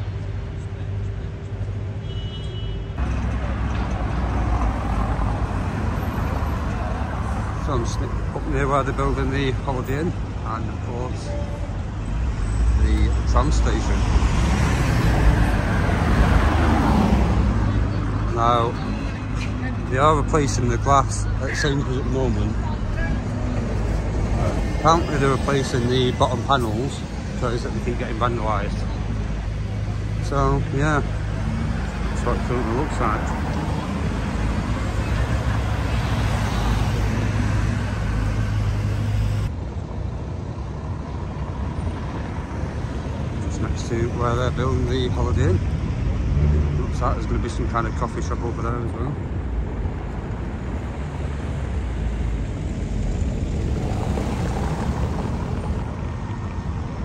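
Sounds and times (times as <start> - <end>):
road traffic: 0.0 - 57.0
vehicle passing close by: 13.7 - 18.3, 50.2 - 57.0.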